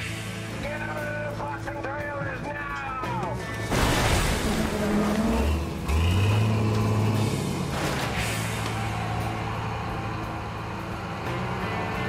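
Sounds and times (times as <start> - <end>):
diesel engine revving: 3.7 - 12.0
people shouting: 8.4 - 12.0.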